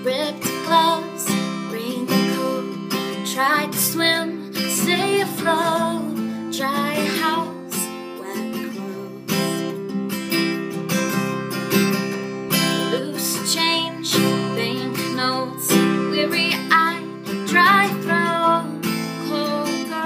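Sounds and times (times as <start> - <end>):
woman singing: 0.0 - 9.8, 12.6 - 20.0
acoustic guitar strumming: 0.0 - 20.0.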